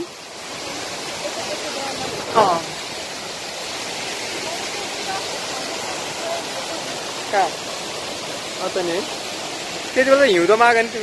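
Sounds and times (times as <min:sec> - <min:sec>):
waterfall roaring: 0:00.0 - 0:11.0.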